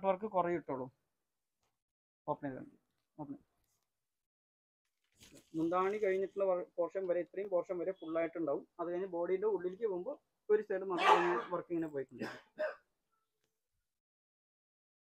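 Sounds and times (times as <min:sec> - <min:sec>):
person talking: 0:05.4 - 0:12.3.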